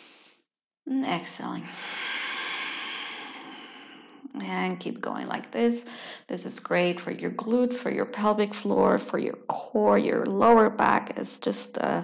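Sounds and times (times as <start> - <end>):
woman exhaling: 1.6 - 4.2.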